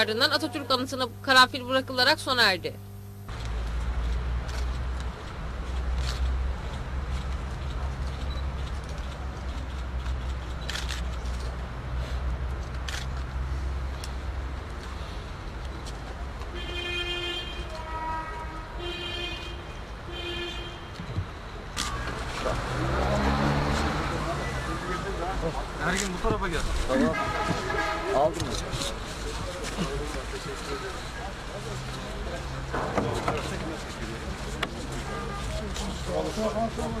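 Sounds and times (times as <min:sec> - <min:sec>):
low traffic rumble: 0:00.0 - 0:37.0
crowd ambience: 0:23.8 - 0:37.0.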